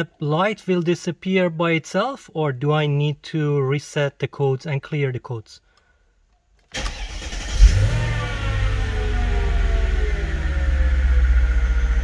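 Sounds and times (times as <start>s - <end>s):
car engine starting and revving: 6.7s - 12.0s.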